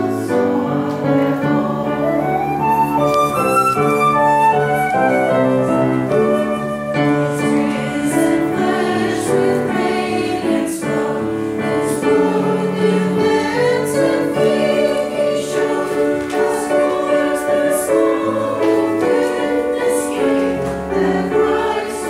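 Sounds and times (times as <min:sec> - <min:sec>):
church choir singing: 0:00.0 - 0:22.0
piano chords: 0:00.0 - 0:22.0.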